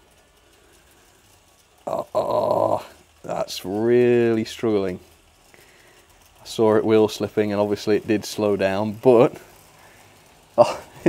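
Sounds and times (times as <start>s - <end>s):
model train running on track: 0.0s - 11.0s
man exclaiming: 1.9s - 4.7s, 10.6s - 11.0s.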